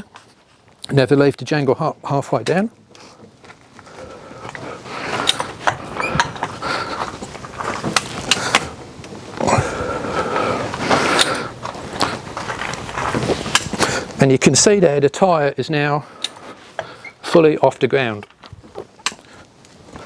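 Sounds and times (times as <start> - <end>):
farm jack clacking and clicking: 4.5 - 8.8
metallic squeaks: 5.9 - 6.5.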